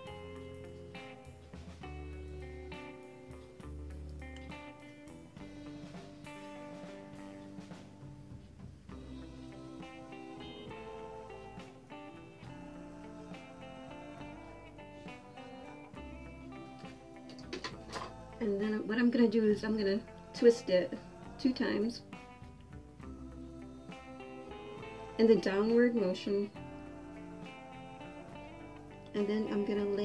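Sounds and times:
quiet guitar music: 0.0s - 30.0s.

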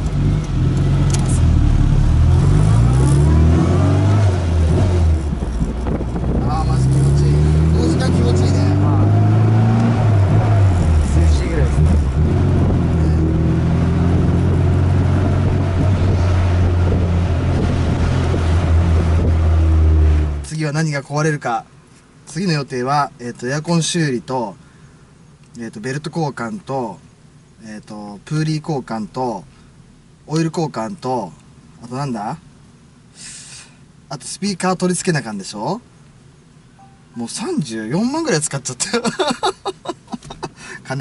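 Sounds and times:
car engine accelerating through gears: 0.0s - 20.5s.

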